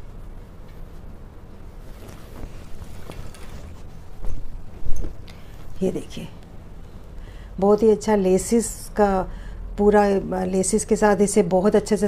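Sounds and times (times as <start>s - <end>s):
fabric rustling: 0.0s - 7.0s.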